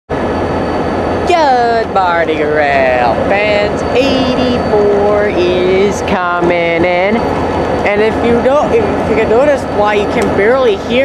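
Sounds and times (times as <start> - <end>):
diesel locomotive engine idling: 0.1 - 11.0
man speaking: 1.2 - 11.0.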